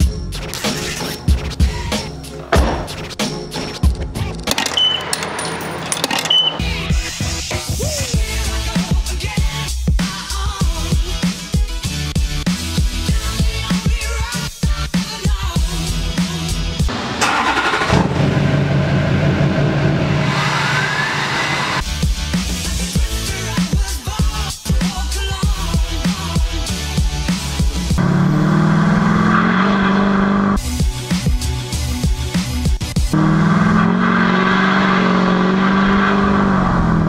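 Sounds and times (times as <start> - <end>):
music: 0.0 - 5.6, 6.2 - 16.9, 21.8 - 28.0, 30.6 - 33.2
diesel engine running: 16.9 - 22.0, 27.6 - 31.0, 32.9 - 37.0.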